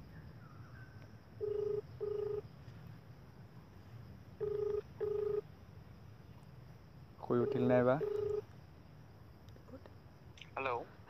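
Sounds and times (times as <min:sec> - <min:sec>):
phone ringback tone: 0:01.4 - 0:02.4, 0:04.4 - 0:05.4, 0:07.4 - 0:08.4.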